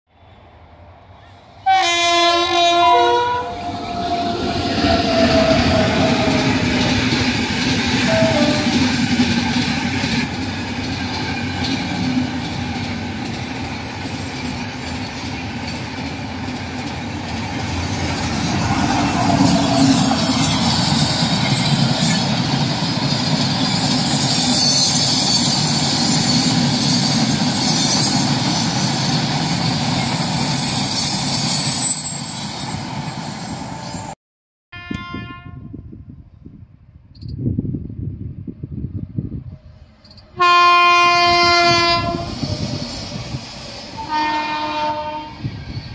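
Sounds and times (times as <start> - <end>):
train horn blast: 1.6 - 6.7, 8.0 - 9.0, 34.7 - 35.9, 40.4 - 42.4, 44.0 - 45.4
train rumble and clickety-clack: 2.2 - 34.2, 37.1 - 45.9
high wheel squeals: 17.8 - 34.1, 42.2 - 44.5.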